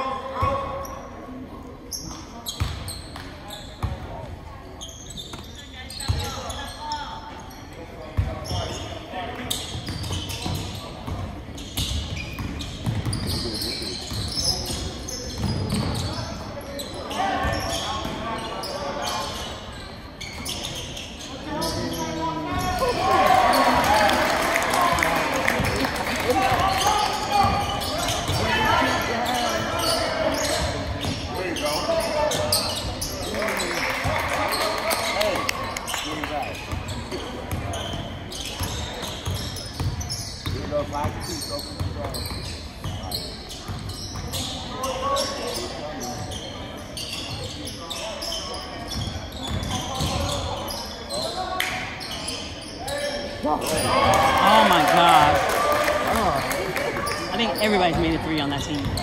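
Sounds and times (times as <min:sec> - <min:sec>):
spectators talking: 0:00.0 - 0:59.0.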